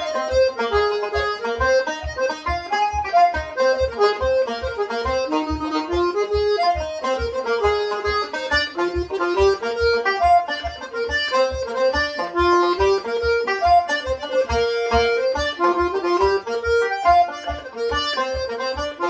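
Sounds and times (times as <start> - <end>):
banjo: 0.0 - 19.0
button accordion: 0.0 - 19.0
steady low beat: 0.0 - 19.0.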